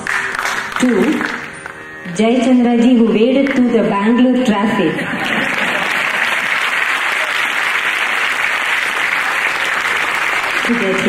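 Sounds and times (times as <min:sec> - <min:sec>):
audience applause: 0:00.0 - 0:01.5, 0:05.0 - 0:11.0.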